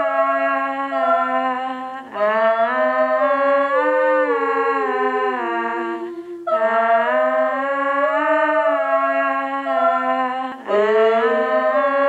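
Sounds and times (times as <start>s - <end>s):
layered female vocals in harmony: 0.0s - 12.0s.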